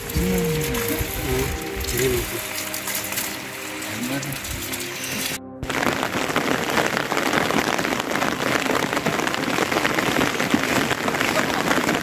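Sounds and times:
rain falling: 0:00.0 - 0:12.0.

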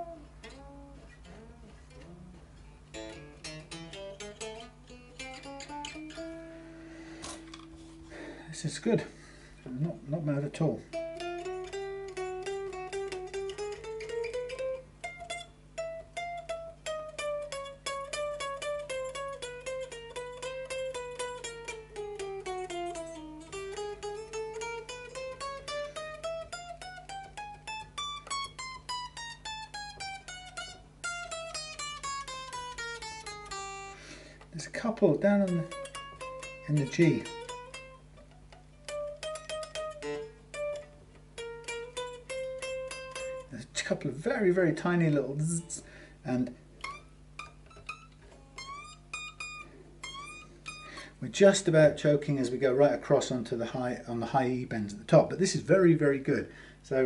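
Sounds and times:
electric guitar single-note runs: 0:00.0 - 0:08.3, 0:10.1 - 0:34.0, 0:34.8 - 0:51.1
guitar fret buzz: 0:00.0 - 0:57.0.

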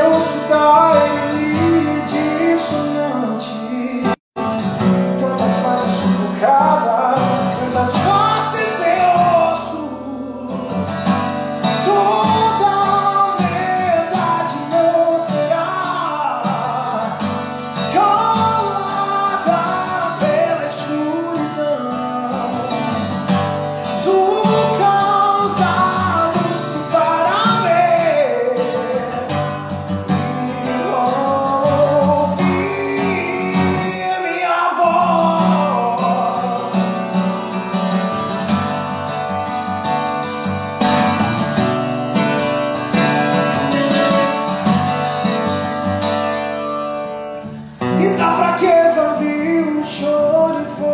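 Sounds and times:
man singing: 0:00.0 - 0:38.1, 0:47.8 - 0:50.9
strummed acoustic guitar: 0:00.0 - 0:50.9.

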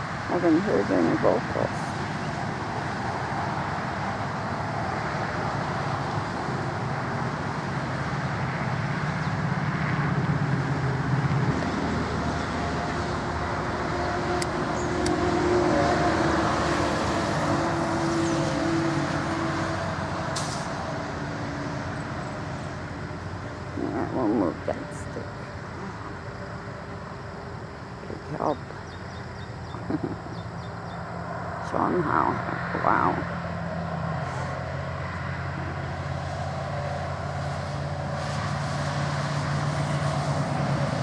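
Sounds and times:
low engine hum: 0:00.0 - 0:41.0
higher engine note: 0:10.1 - 0:26.6.

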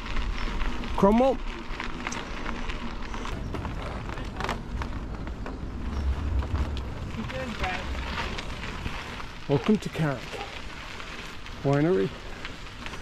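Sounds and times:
tyres rumbling over wooden boardwalk: 0:00.0 - 0:13.0
wind buffeting microphone: 0:02.8 - 0:09.5.

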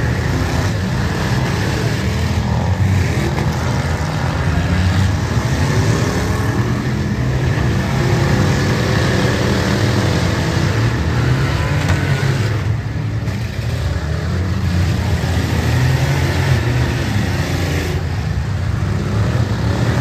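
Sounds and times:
car engines revving: 0:00.0 - 0:20.0.

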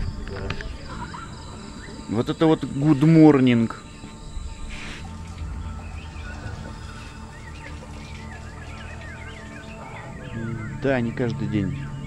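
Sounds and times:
birds chirping and warbling: 0:00.0 - 0:12.0
low steady hum: 0:00.0 - 0:12.0
soft background music: 0:00.0 - 0:12.0.

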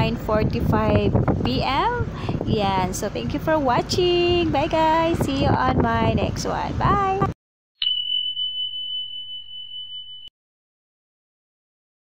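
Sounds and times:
high ringing tone: 0:07.8 - 0:10.4.

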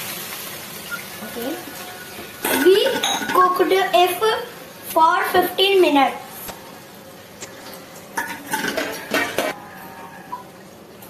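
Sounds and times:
steel bowls and spoons clinking: 0:01.8 - 0:03.5, 0:07.6 - 0:10.5.

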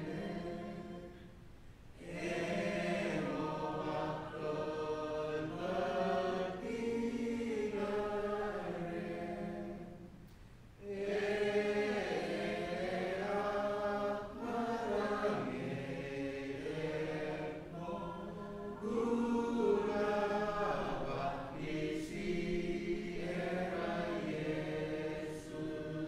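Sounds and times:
congregation singing a hymn: 0:00.0 - 0:26.0.

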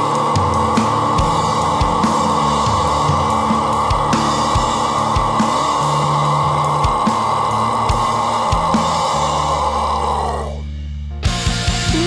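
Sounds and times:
heavy rock band playing: 0:00.0 - 0:12.0.

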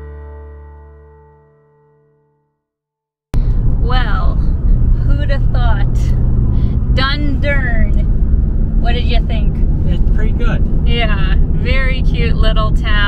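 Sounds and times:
road and engine rumble in vehicle cab: 0:03.4 - 0:13.0
voices: 0:03.8 - 0:08.1, 0:08.8 - 0:13.0.

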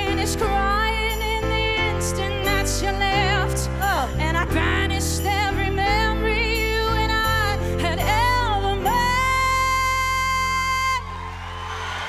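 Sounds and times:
audience cheering: 0:10.4 - 0:12.0.

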